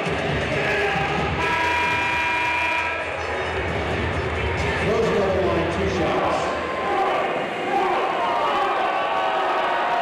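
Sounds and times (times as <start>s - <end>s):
arena horn sounding: 1.4s - 3.0s.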